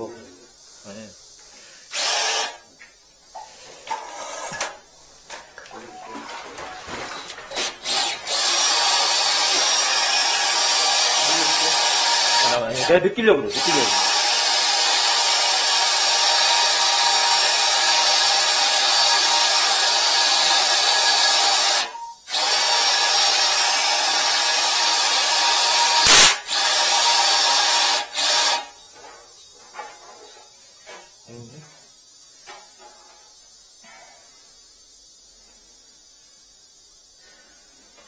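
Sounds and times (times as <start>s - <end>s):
cordless drill motor whine: 7.8s - 12.7s, 13.5s - 28.7s.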